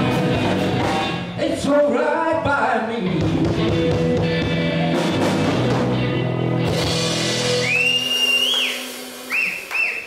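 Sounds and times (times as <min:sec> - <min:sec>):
person whistling in approval: 0:07.6 - 0:10.0.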